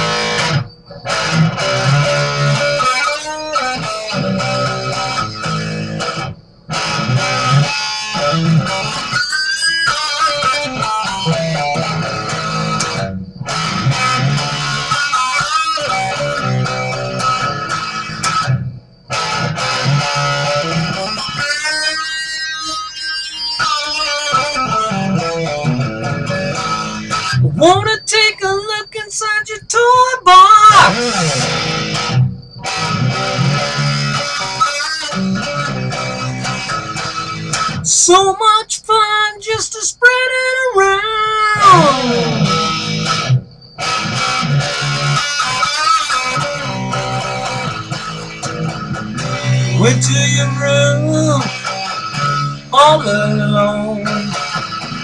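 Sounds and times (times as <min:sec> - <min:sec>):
electric guitar riff: 0:00.0 - 0:55.0
person singing: 0:27.4 - 0:31.5, 0:37.8 - 0:42.6, 0:49.7 - 0:51.6, 0:52.7 - 0:54.4.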